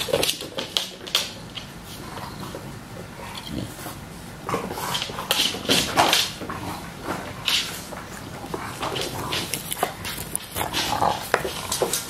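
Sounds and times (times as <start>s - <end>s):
dog gnawing rubber toy: 0.0s - 12.0s.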